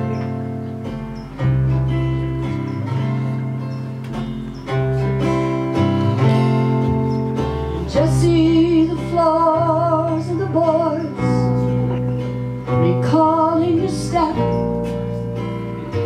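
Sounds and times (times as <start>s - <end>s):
strummed acoustic guitar: 0.0s - 16.0s
upright bass notes: 0.0s - 16.0s.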